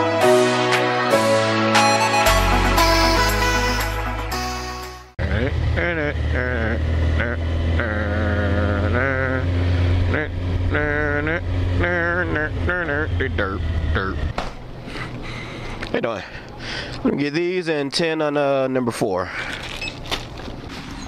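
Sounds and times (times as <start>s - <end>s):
wavering voice-like humming: 5.2s - 14.3s
motorcycle engine low rumble: 5.2s - 14.8s.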